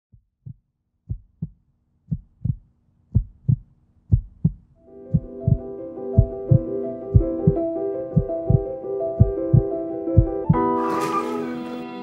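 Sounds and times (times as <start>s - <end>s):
heartbeat thumps: 0.1s - 10.6s
music with sustained chords: 4.8s - 12.0s.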